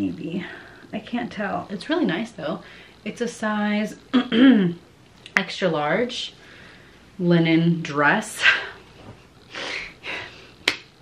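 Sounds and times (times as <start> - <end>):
soft breathy exhalations: 8.4 - 10.6
sharp hand clap: 10.6 - 10.9.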